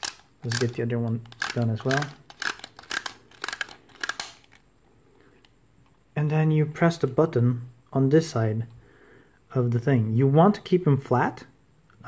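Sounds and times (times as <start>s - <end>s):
toy launcher ratcheting clicks: 0.0s - 4.6s.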